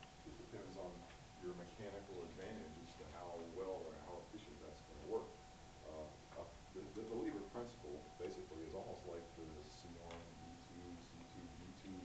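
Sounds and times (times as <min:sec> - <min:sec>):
thin steady tone: 0:00.0 - 0:12.0
man lecturing: 0:00.2 - 0:12.0.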